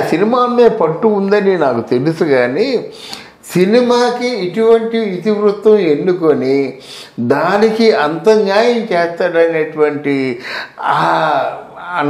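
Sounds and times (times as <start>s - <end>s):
man speaking: 0.0s - 12.0s
breathy gasp: 10.4s - 10.8s.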